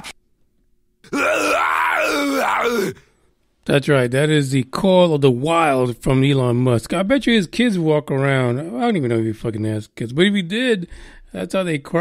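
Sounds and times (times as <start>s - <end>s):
person wailing: 1.1s - 3.0s.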